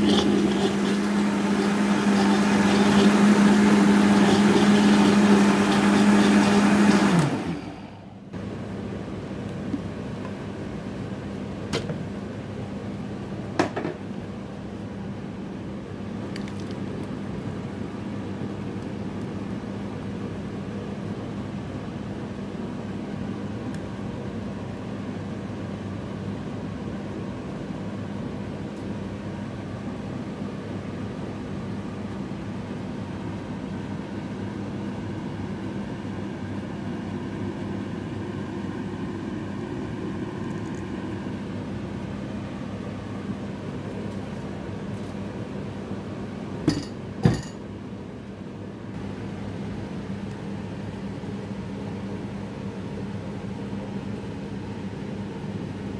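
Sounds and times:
steady mechanical hum: 0.0s - 55.9s.

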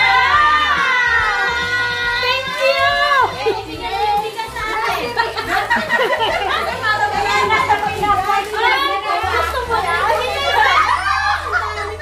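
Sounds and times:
women chattering: 1.3s - 12.0s.

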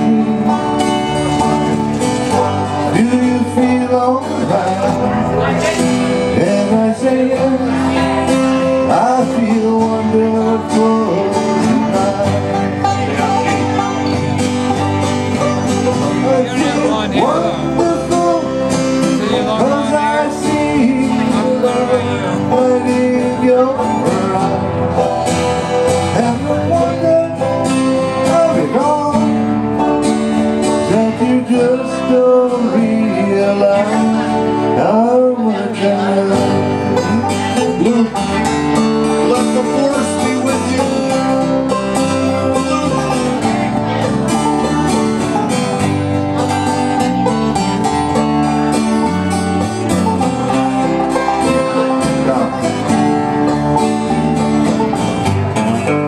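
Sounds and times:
banjo: 0.0s - 56.0s
electric bass: 0.0s - 56.0s
sliding lead melody: 0.0s - 56.0s
strummed acoustic guitars: 0.0s - 56.0s.

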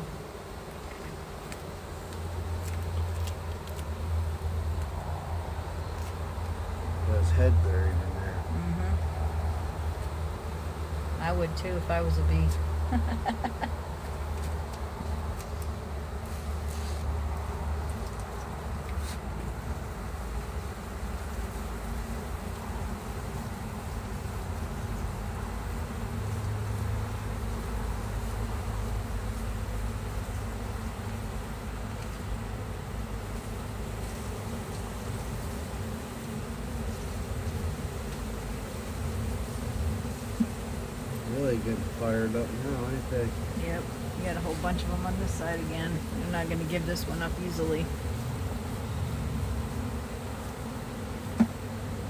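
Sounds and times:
bees buzzing: 0.0s - 52.0s.

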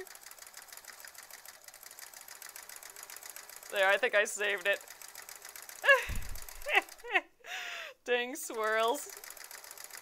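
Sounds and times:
sewing machine stitching: 0.0s - 7.2s, 8.5s - 10.0s
person sighing or laughing: 5.8s - 6.8s, 7.4s - 8.0s.

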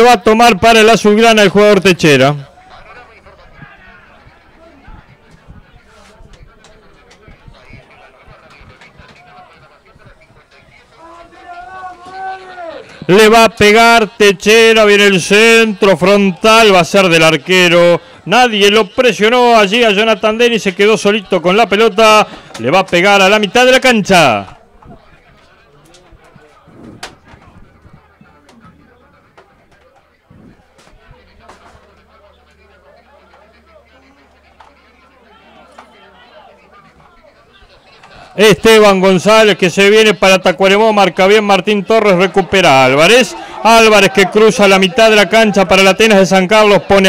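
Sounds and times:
distant voices: 1.0s - 47.0s
distant shouts: 2.4s - 47.0s
low thumps on microphone: 26.6s - 28.8s.

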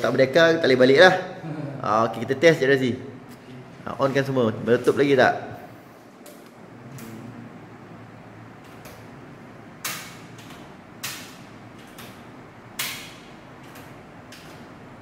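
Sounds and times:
circuit breakers clicking: 6.2s - 7.4s, 8.4s - 15.0s.

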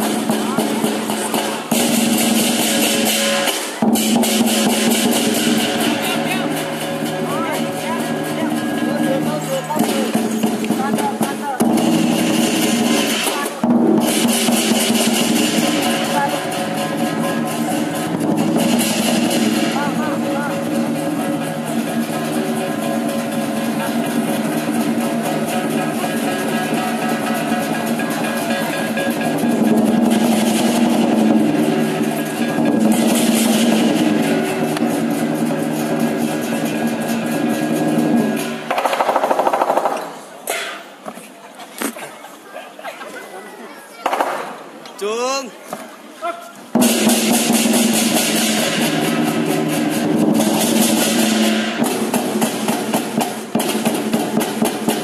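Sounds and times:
cymbals clashing: 0.0s - 39.2s, 46.7s - 55.0s
big drum beating rapidly: 0.0s - 40.0s, 46.7s - 55.0s.

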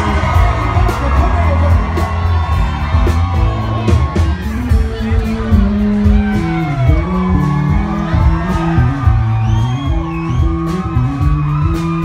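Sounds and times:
bass line: 0.0s - 12.0s
steady drum beat: 0.0s - 12.0s.

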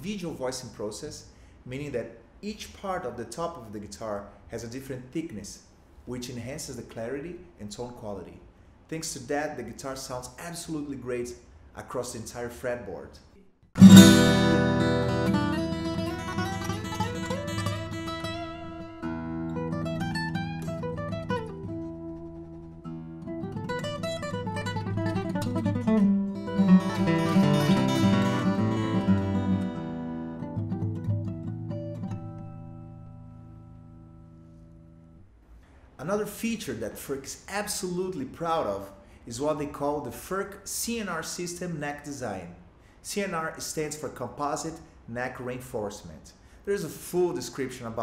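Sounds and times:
fingerstyle acoustic guitar: 13.8s - 35.1s.

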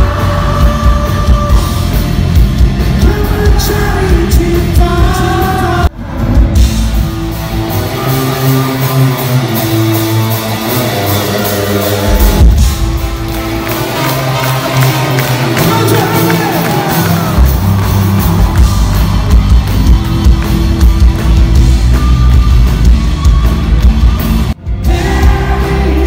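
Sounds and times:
person singing: 0.0s - 2.0s, 2.8s - 6.4s, 24.7s - 26.0s
bass: 0.0s - 26.0s
crowd noise: 0.0s - 26.0s
drums: 0.0s - 26.0s.

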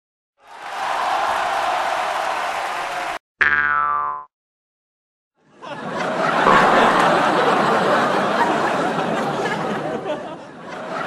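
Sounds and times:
cartoon boing sliding downward: 3.4s - 4.3s, 6.4s - 7.4s.

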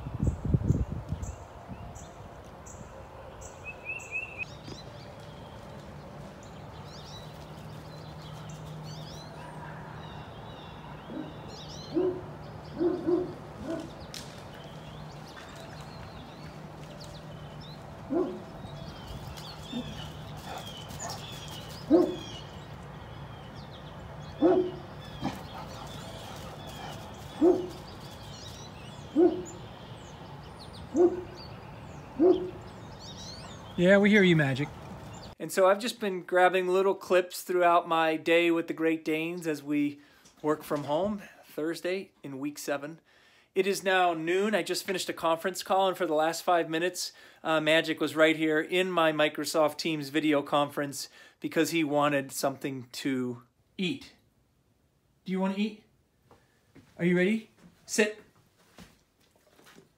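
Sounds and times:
birds chirping: 0.0s - 53.0s
dog barking deep woofs: 9.2s - 10.3s, 10.9s - 14.0s, 18.1s - 18.6s, 21.8s - 22.4s, 24.4s - 27.9s, 29.1s - 29.6s, 30.9s - 31.4s, 32.2s - 32.7s.

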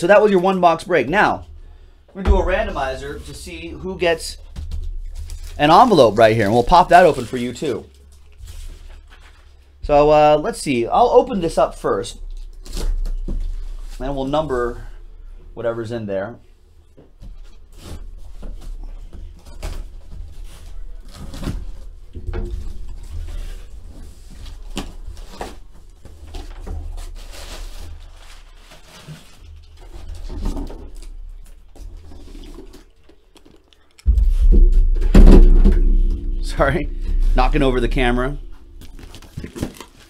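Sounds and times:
loud rumbling thump: 1.4s - 6.0s, 34.1s - 39.5s
cardboard rustling and scraping: 2.2s - 9.8s, 11.5s - 14.8s, 17.2s - 33.2s, 34.1s - 40.0s.

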